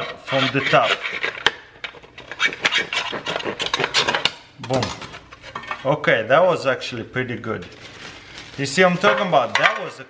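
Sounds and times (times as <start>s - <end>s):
bread knife sawing through bun: 0.0s - 1.4s, 2.2s - 4.3s.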